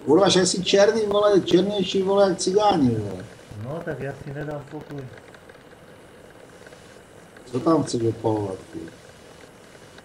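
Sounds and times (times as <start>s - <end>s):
background hiss and hum: 0.0s - 10.0s.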